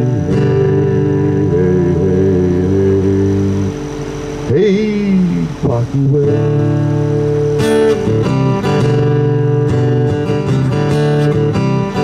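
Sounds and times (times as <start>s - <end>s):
guitar chord through amplifier: 0.0s - 12.0s
sliding pitched guitar sound: 0.0s - 12.0s.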